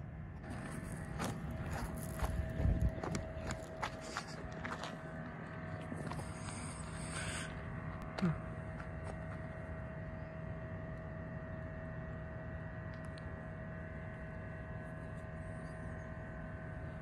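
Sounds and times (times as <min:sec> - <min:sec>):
footsteps crunching on gravel: 0:00.4 - 0:07.1.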